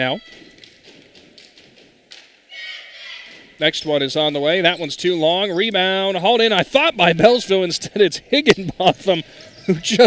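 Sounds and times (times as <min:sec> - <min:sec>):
basketball bouncing on hardwood floor: 0:00.2 - 0:02.2.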